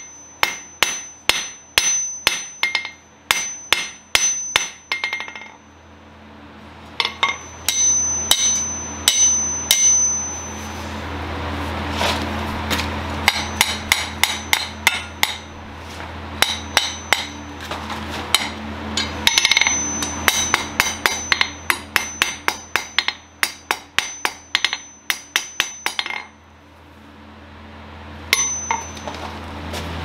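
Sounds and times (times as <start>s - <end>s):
hammer striking metal on anvil: 0.0s - 5.8s, 7.0s - 10.9s, 13.2s - 15.6s, 16.4s - 17.5s, 18.3s - 26.4s, 28.3s - 29.3s.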